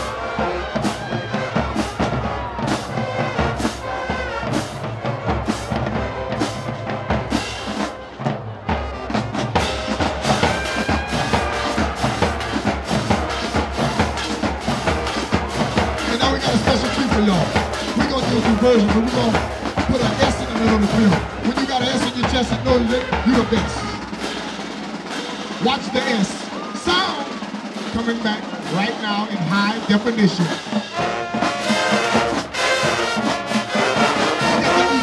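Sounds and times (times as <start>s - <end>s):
brass and sousaphones: 0.0s - 35.0s
marching band playing: 0.0s - 35.0s
steady drum beat: 0.0s - 35.0s.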